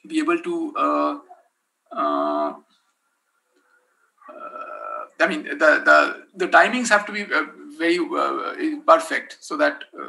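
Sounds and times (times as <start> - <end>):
man saying uhh: 0.5 - 2.6, 4.3 - 5.2.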